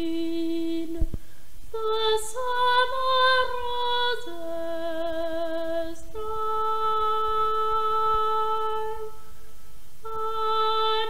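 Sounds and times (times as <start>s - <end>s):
boy singing unaccompanied: 0.0s - 1.1s, 1.7s - 9.2s, 10.0s - 11.0s
short low thumps: 1.0s - 1.3s.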